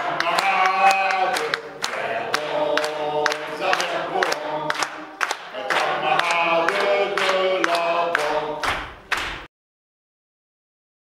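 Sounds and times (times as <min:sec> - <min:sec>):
voices singing together: 0:00.0 - 0:09.0.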